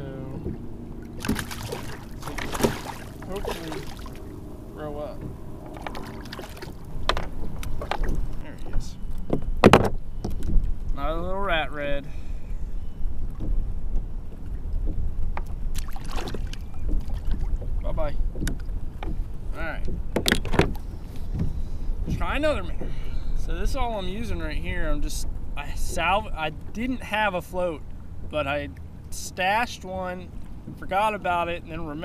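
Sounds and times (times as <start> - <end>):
wind and water rumble: 0.0 - 32.0
knocks against kayak hull: 1.2 - 3.4, 9.3 - 10.6.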